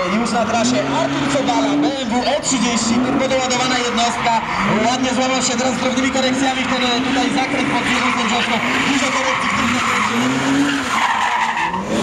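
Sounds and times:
car engine revving: 0.0 - 12.0
tyres skidding: 0.0 - 12.0.

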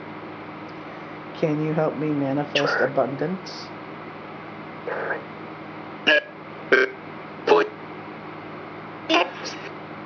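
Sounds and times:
clipped voice fragments: 2.6 - 2.9, 7.5 - 7.7.

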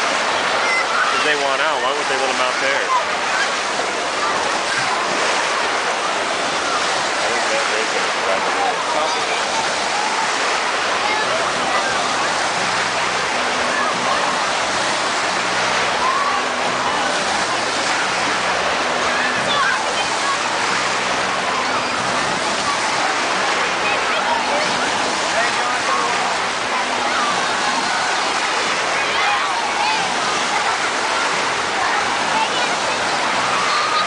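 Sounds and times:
rushing and breaking water: 0.0 - 34.0
voices of many swimmers: 0.0 - 34.0.

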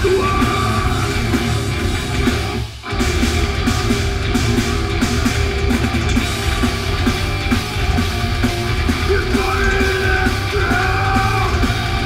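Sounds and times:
heavy metal band playing live: 0.0 - 12.0.

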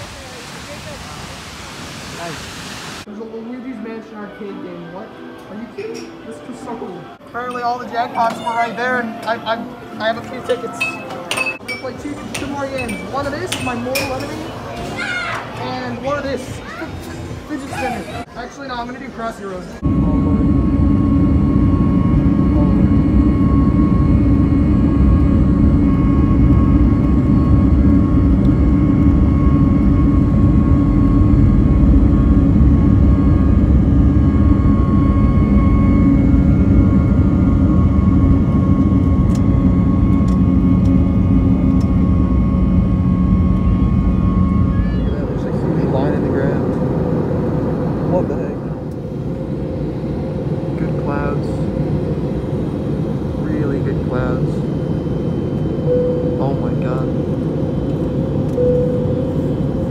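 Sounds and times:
jet airliner cabin noise: 7.8 - 59.9
faint whine: 18.2 - 59.9.

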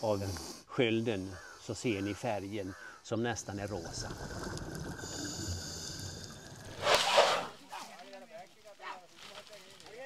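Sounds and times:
rushing water underwater: 3.8 - 7.6.

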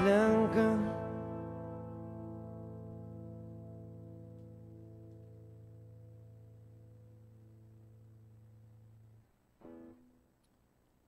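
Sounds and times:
electric guitar notes: 0.0 - 10.2.

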